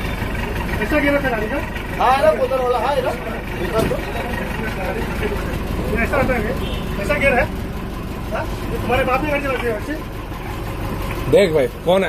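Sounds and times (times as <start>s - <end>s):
bus engine idling: 0.0s - 12.0s.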